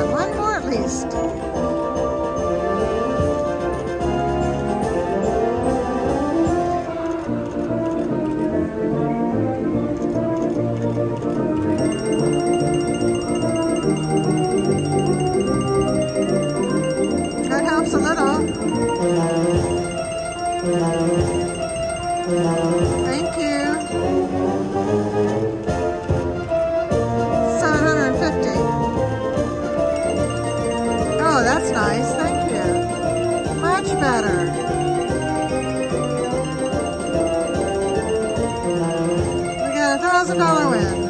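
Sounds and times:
organ-like slot machine music: 0:11.7 - 0:24.8, 0:29.9 - 0:41.0
high repeating chimes: 0:11.8 - 0:24.3, 0:30.0 - 0:41.0.

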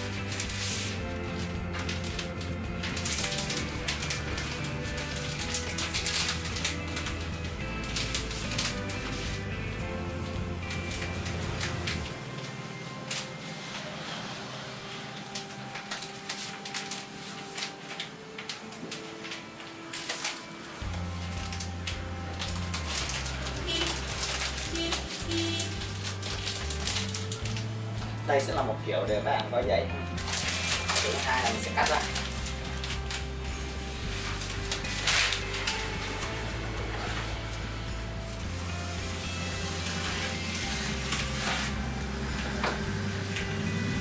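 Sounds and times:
background music with bass: 0:00.0 - 0:13.4, 0:20.8 - 0:44.0
wrapping paper rustling: 0:00.0 - 0:28.7, 0:30.1 - 0:44.0.

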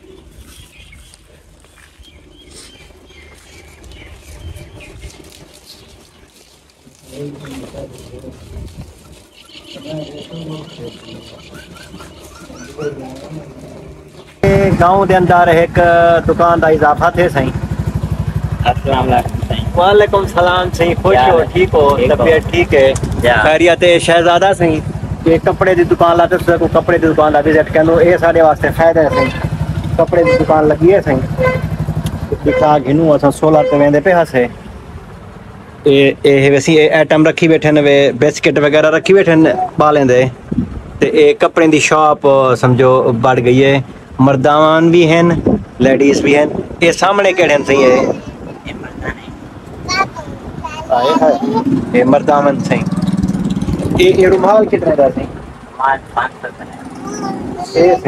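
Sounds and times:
small birds chirping: 0:00.0 - 0:14.4
people talking: 0:07.0 - 0:08.5, 0:09.7 - 0:11.6, 0:12.5 - 0:17.6, 0:18.6 - 0:31.5, 0:32.3 - 0:34.6, 0:35.9 - 0:40.4, 0:41.0 - 0:52.9, 0:53.8 - 0:58.0
motorcycle engine idling: 0:13.6 - 0:34.0.

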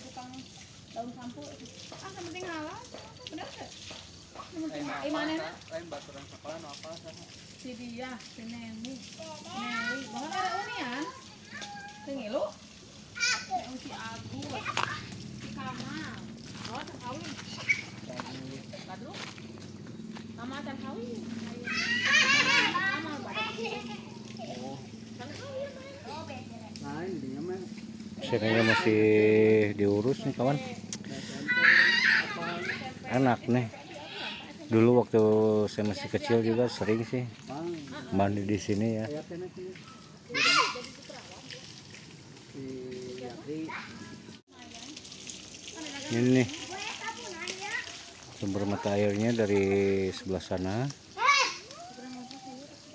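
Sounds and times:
spring water running: 0:00.0 - 0:52.9
children calling and shouting: 0:08.9 - 0:38.2, 0:39.7 - 0:42.6, 0:43.2 - 0:50.1, 0:51.0 - 0:52.9
people's voices: 0:13.2 - 0:38.2.

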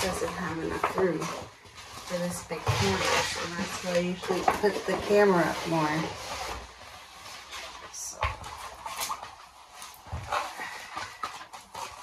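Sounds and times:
paper-like rustling and crinkling: 0:00.0 - 0:12.0.

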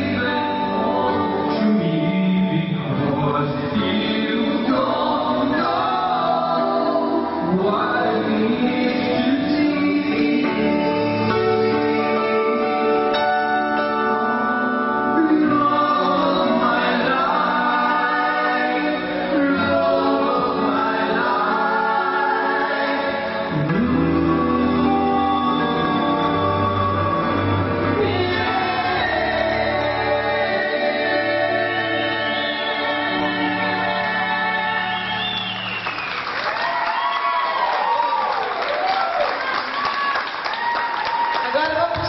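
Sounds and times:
live band with electric guitar: 0:00.0 - 0:17.7, 0:19.0 - 0:30.2
men and women singing: 0:00.0 - 0:35.6.

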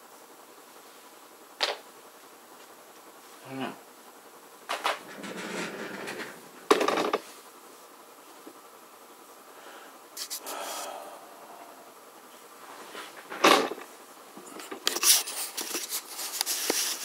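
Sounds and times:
scraping and rubbing handling noises: 0:04.7 - 0:07.5, 0:12.6 - 0:17.0.

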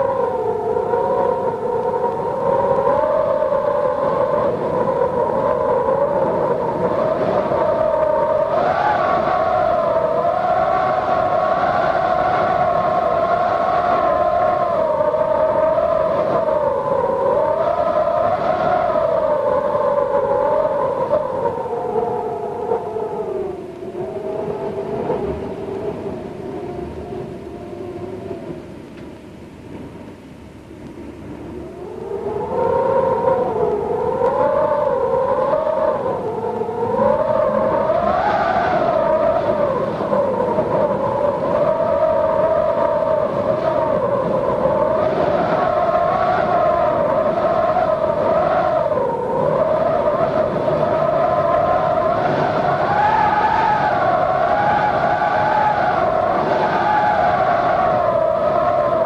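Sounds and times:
eerie wailing tone: 0:00.0 - 0:28.8, 0:31.4 - 0:59.0.

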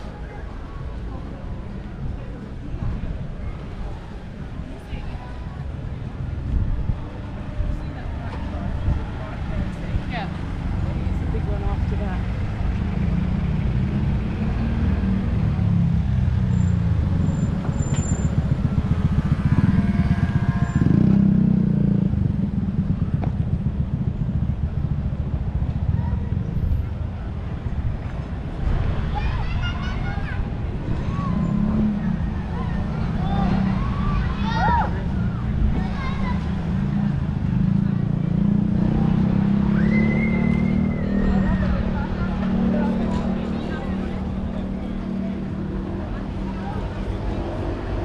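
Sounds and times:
passers-by talking: 0:00.0 - 0:48.0
road traffic rumble: 0:00.0 - 0:48.0.

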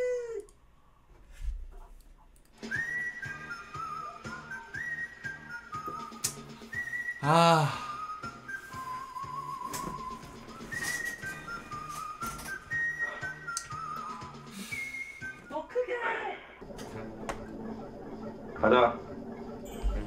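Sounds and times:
whistled tune over low beat: 0:02.6 - 0:15.5.

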